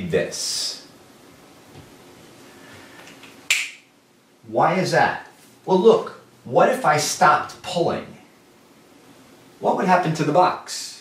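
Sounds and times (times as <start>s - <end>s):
sharp click: 3.1s - 3.8s.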